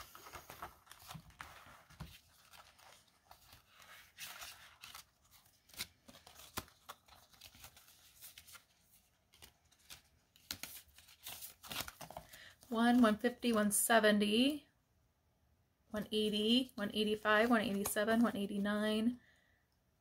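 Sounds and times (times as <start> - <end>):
paper banknotes rustling: 0.0 - 13.6, 17.1 - 18.7.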